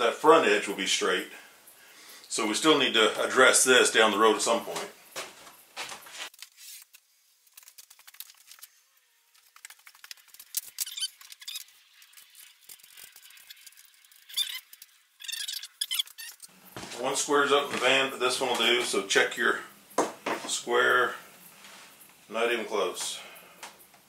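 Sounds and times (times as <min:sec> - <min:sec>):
small squeaks: 0:09.5 - 0:17.0.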